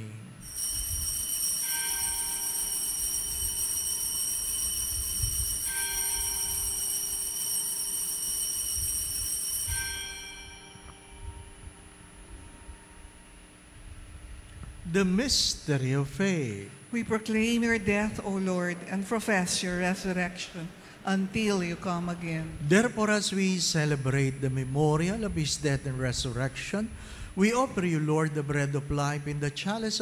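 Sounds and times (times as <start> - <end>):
altar bells ringing: 0.4 - 13.4.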